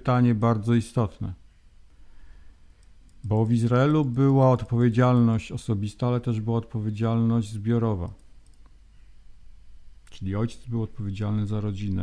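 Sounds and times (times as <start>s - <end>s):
low steady hum: 0.0s - 12.0s
faint clicks: 2.7s - 4.4s, 8.0s - 9.2s.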